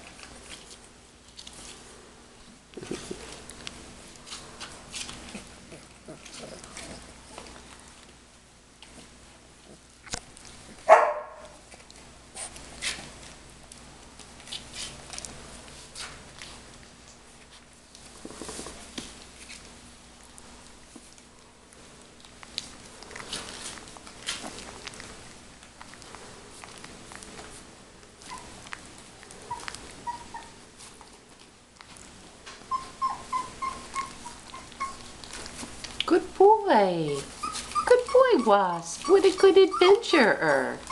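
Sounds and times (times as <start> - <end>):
faint clicks and scratches: 8.8 - 32.6
puppy yipping: 10.9 - 11.6, 28.2 - 28.6, 29.4 - 30.6, 32.6 - 35.4, 37.1 - 40.1.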